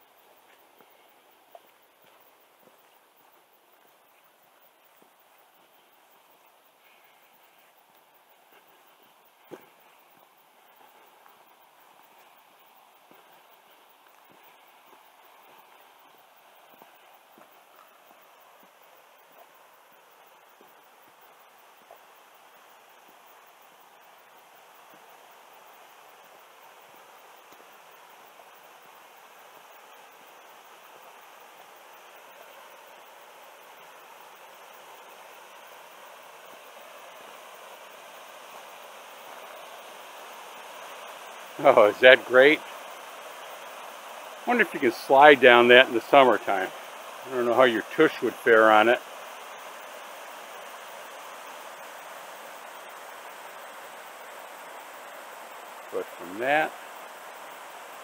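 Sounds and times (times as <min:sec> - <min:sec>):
waterfall rushing over rocks: 0:07.3 - 0:58.0.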